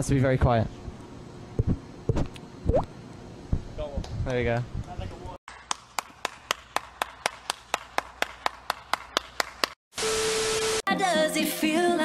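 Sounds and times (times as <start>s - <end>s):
person clapping hands: 5.5s - 9.8s.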